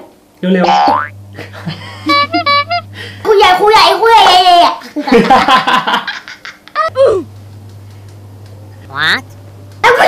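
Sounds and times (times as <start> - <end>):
steady low hum: 0.2 - 4.1, 4.8 - 10.0.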